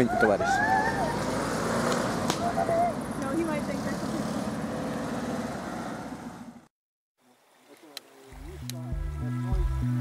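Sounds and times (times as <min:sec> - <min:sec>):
people calling out: 0:00.0 - 0:01.5, 0:02.3 - 0:03.1.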